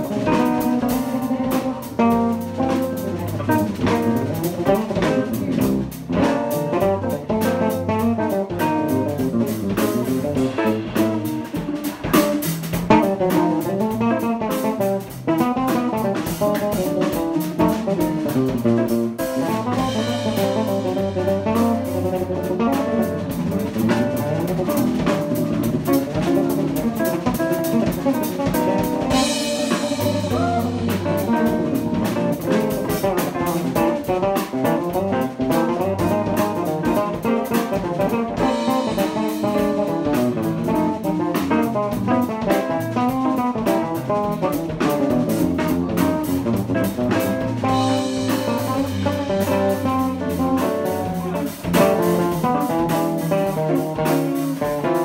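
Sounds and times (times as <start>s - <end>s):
live jazz trio playing: 0.0s - 55.0s.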